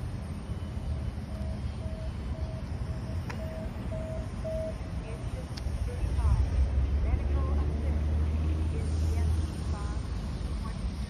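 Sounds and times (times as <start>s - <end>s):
short electronic beeps: 0.3s - 4.9s.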